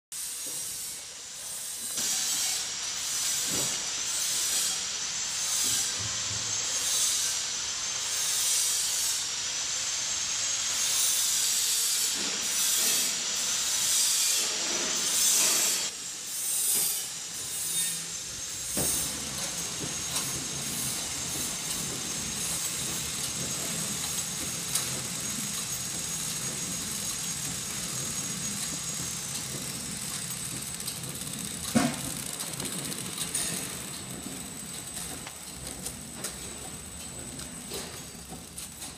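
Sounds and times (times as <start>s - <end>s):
packing machine hiss and whir: 0.1s - 38.9s.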